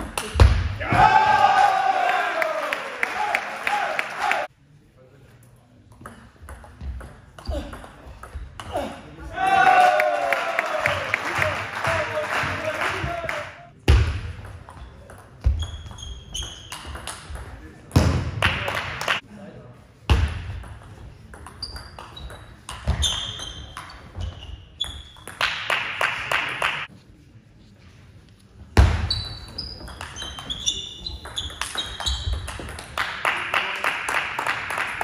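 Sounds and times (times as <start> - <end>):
people clapping: 1.4 - 4.5, 9.5 - 13.7, 18.4 - 19.2, 25.4 - 26.9, 32.5 - 35.0
shoes squeaking on sports floor: 15.4 - 17.0, 21.5 - 25.3, 29.0 - 32.6.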